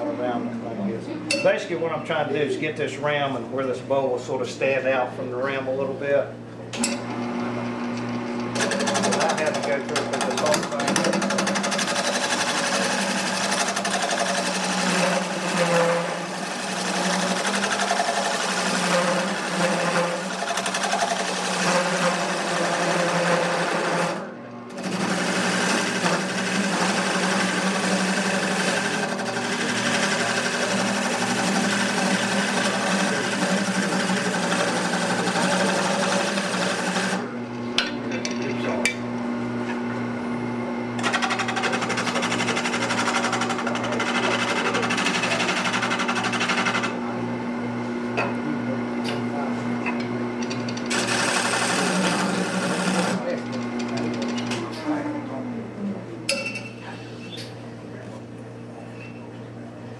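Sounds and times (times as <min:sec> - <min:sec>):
tool cutting wood on lathe: 0:06.8 - 0:37.3, 0:41.0 - 0:47.1, 0:49.9 - 0:54.6
wood lathe humming: 0:07.0 - 0:37.4, 0:41.0 - 0:54.8.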